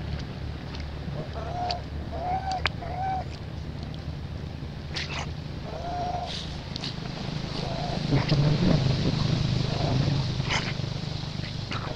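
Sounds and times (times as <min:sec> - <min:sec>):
low steady hum: 0:00.0 - 0:11.9
baby monkey whimpering coos: 0:01.4 - 0:03.3.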